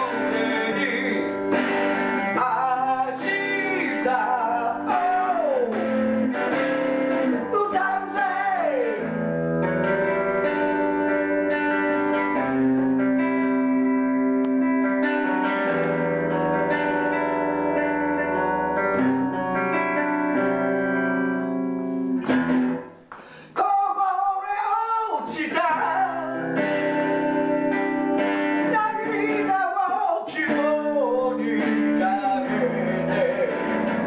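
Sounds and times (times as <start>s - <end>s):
man singing: 0.0s - 9.3s, 23.5s - 27.2s, 28.5s - 34.0s
electric guitar chords: 0.0s - 23.6s, 24.2s - 34.0s.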